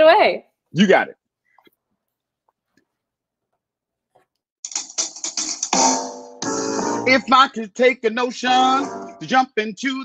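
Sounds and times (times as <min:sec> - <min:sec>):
sharp percussive hits: 0:04.6 - 0:07.2.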